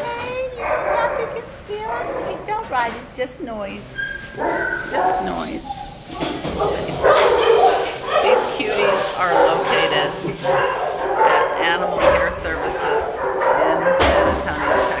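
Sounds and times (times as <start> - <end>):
dogs barking and yipping: 0.4 - 2.6, 3.8 - 15.0
dogs whining: 3.8 - 15.0.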